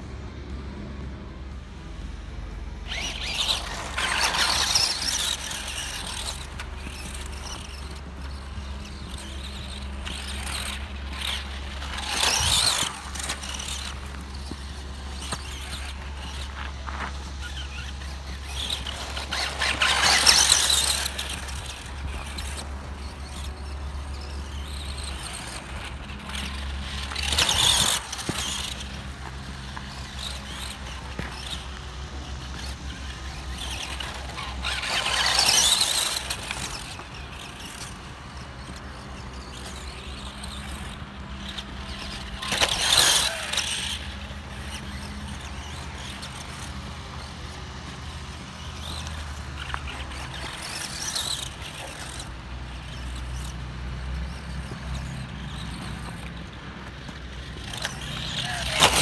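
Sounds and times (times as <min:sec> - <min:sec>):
rc car passing: 0:00.0 - 0:59.0.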